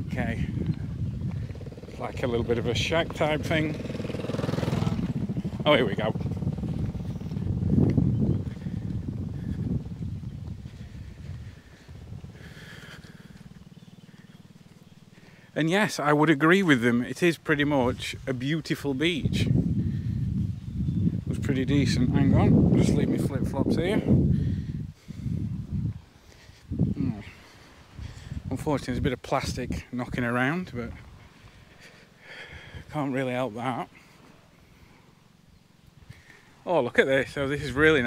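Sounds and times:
wind buffeting microphone: 0.0 - 38.0
small motorbike engine running: 0.5 - 15.5.

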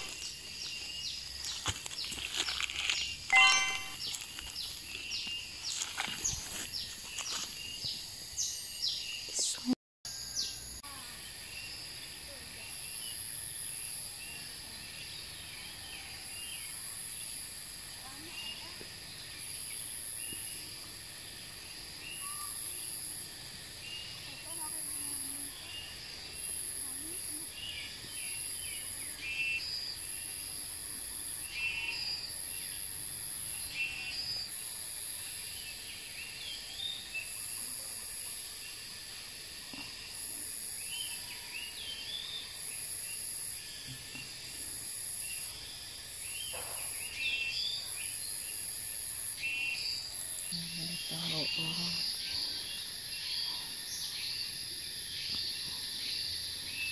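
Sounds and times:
steady insect hum: 0.0 - 3.3, 4.0 - 56.9
bird chirps: 2.8 - 9.7
insects buzzing pulsing chorus: 10.1 - 56.9.

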